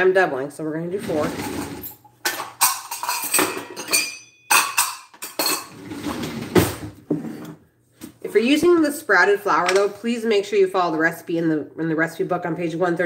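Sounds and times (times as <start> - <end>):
dishes and utensils clinking: 1.3 - 6.2.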